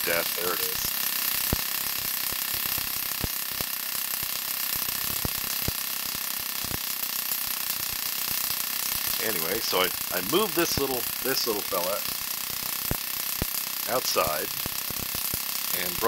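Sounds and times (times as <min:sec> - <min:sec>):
electric sparks snapping: 0:00.0 - 0:16.0
tesla coil hissing: 0:00.0 - 0:16.0.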